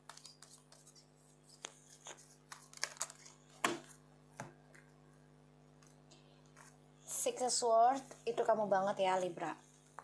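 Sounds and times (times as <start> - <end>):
cards clicking and slapping on table: 0.0 - 4.9
faint steady hum: 0.0 - 10.0.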